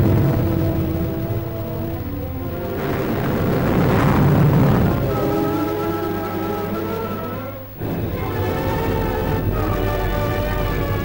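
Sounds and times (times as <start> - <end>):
loud rumbling noise: 0.0 - 11.0
sustained music: 0.0 - 11.0.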